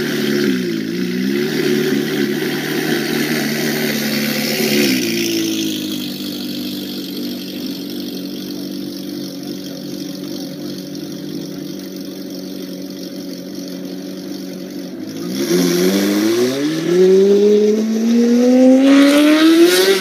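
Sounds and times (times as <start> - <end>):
sports car engine pulling away: 0.0 - 20.0.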